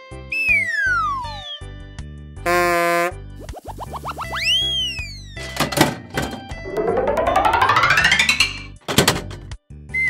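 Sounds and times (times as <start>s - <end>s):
buzzy horn-like tone: 2.5s - 3.2s
children's background music: 3.4s - 9.1s
rising boings: 6.6s - 8.8s.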